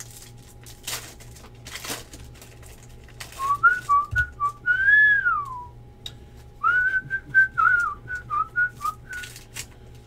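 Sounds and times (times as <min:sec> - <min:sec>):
person whistling a tune: 0:03.4 - 0:05.8, 0:06.6 - 0:09.4.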